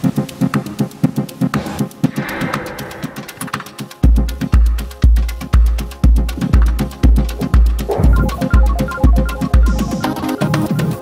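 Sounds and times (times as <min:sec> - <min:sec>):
fast ticking hi-hats: 0:00.0 - 0:11.0
pulsing synth bass: 0:07.9 - 0:10.8.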